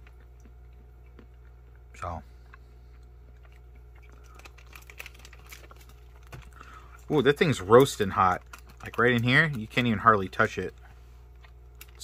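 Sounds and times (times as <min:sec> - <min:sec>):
plastic bag crinkling: 0:04.0 - 0:10.7.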